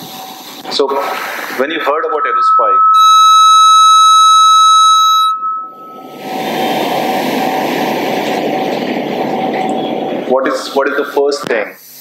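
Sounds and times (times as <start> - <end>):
steady rushing noise: 0.0 - 2.5, 4.9 - 12.0
microphone feedback whistle: 1.5 - 7.0.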